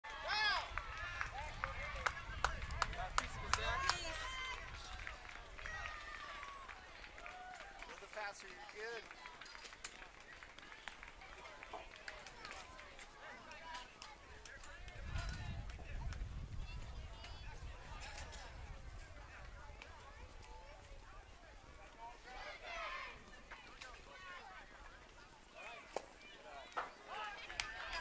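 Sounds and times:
sharp claps: 0:00.5 - 0:16.3, 0:25.9 - 0:28.0
low rumble on microphone: 0:14.9 - 0:21.0.

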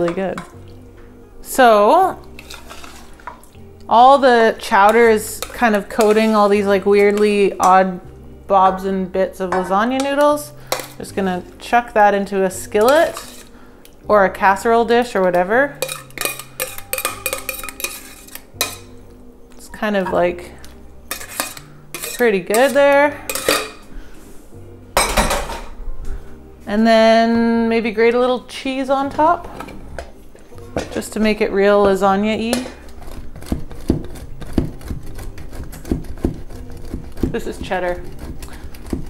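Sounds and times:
metal spoon scraping steel pot: 0:02.3 - 0:03.4, 0:04.6 - 0:07.8, 0:09.5 - 0:11.4, 0:12.6 - 0:13.6, 0:15.3 - 0:19.0, 0:19.9 - 0:23.9, 0:32.4 - 0:39.0
cheese grating on metal grater: 0:12.9 - 0:13.6, 0:15.8 - 0:18.5, 0:21.1 - 0:22.8, 0:32.8 - 0:39.0.

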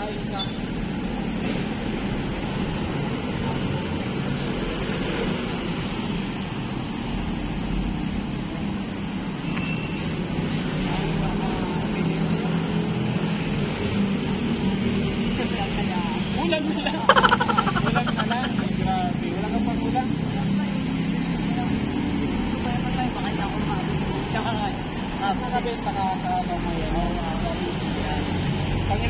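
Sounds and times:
road traffic passing: 0:10.0 - 0:25.5.

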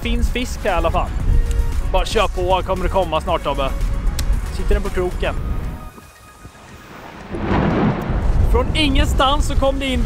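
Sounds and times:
rain and windstorm: 0:03.8 - 0:10.0
rushing thunder-like storm noise: 0:06.4 - 0:10.0.

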